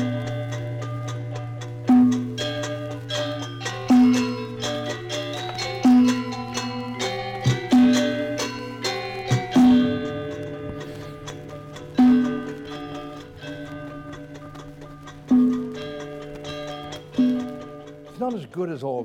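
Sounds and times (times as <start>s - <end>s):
metallophones ringing: 0.0s - 19.0s.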